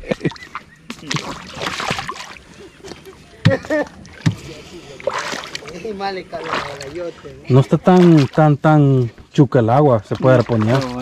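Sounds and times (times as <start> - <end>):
water splashing around wading person: 0.0 - 11.0.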